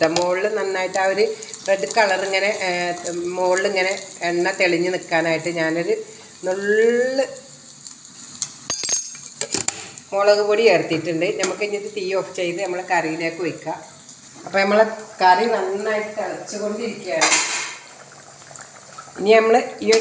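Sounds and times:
hot oil sizzling in pan: 0.0 - 20.0.

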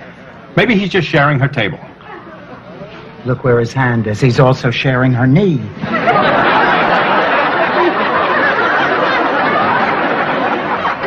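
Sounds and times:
studio audience laughing: 5.8 - 11.0.

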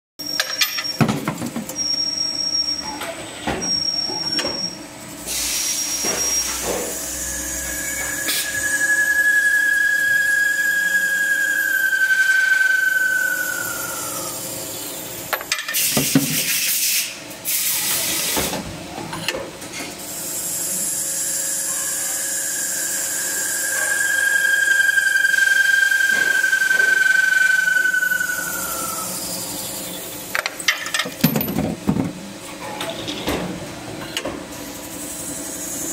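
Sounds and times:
high squeal of cutting tool: 5.4 - 15.0, 20.4 - 30.2.

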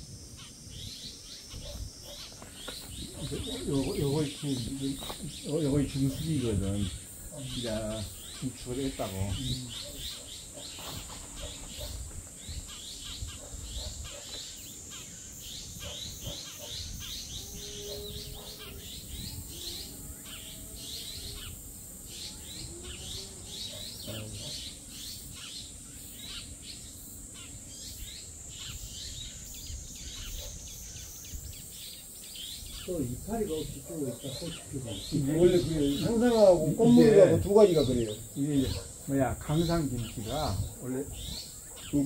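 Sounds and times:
high-pitched insect buzz: 0.0 - 36.4
birds chirping: 0.0 - 42.0.

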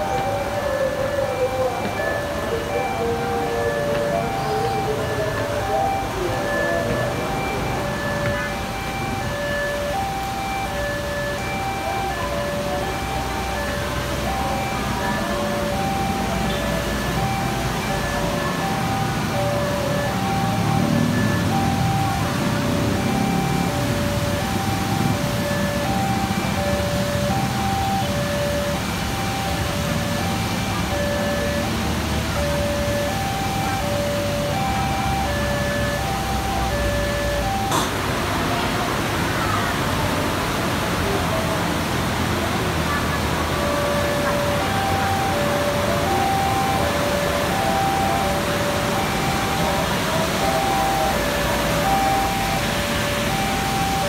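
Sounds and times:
traffic rumble: 0.0 - 54.0.

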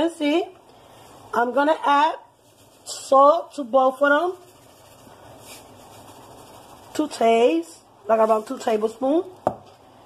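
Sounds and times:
salt being poured: 2.3 - 9.0
water boiling and bubbling: 4.0 - 8.0.

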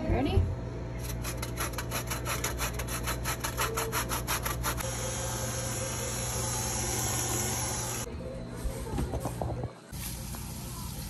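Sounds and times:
lemon rasping on metal grater: 1.0 - 4.8.

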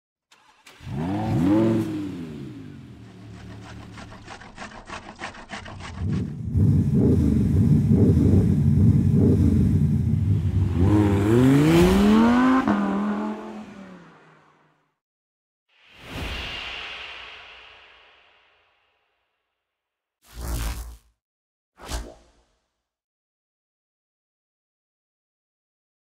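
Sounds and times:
car engine revving: 0.3 - 4.1, 6.0 - 14.4.

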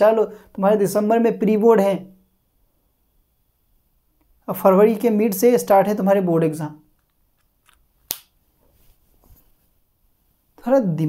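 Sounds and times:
faint small noises: 2.1 - 5.2, 6.6 - 11.0.

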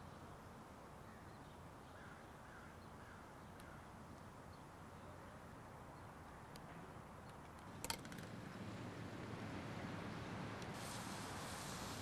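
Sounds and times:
faint outdoor hiss: 0.0 - 12.0
faint bird calls: 1.0 - 5.4.

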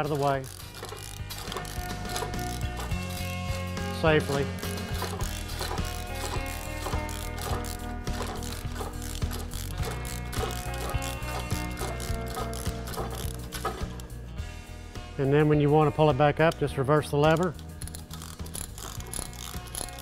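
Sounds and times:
chain hoist ratcheting: 0.0 - 14.2, 16.4 - 20.0
background music: 0.0 - 20.0.

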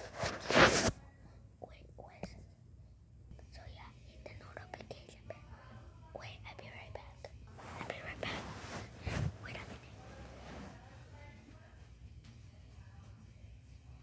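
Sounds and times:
boy whispering: 1.6 - 2.6, 3.3 - 10.4.

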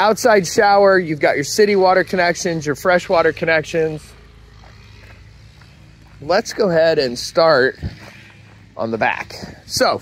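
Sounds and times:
footsteps on gravel: 0.0 - 10.0
low steady rumble: 0.0 - 10.0.

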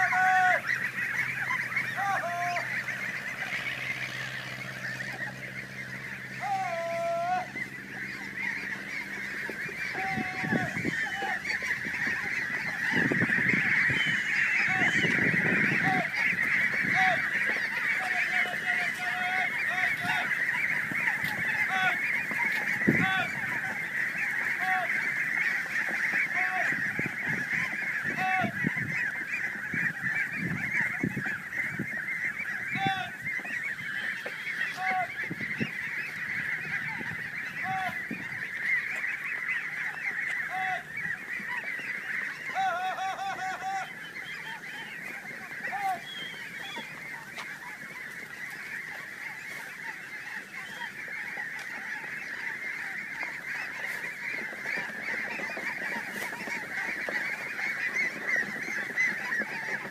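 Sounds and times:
flock of geese honking: 0.0 - 59.9.

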